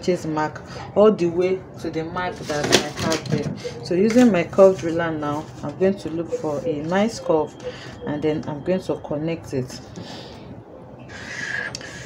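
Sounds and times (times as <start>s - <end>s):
marker squeaking: 3.3s - 8.4s
marker scratching on paper: 4.6s - 7.9s.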